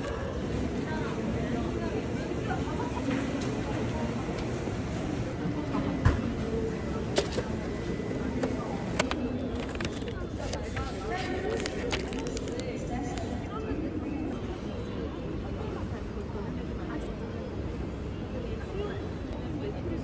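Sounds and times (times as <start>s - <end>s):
background chatter: 0.0s - 20.0s
cardboard box and wrapper crinkling: 9.6s - 12.8s.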